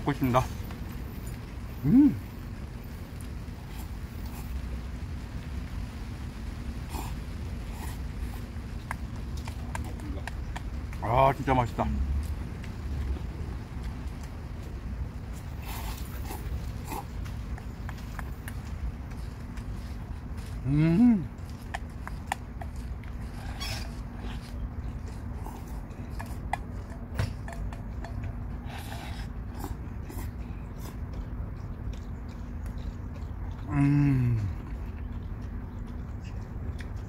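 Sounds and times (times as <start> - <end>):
low background rumble: 0.0 - 37.0
person chewing noodles: 3.1 - 4.7, 6.8 - 10.9, 13.8 - 37.0.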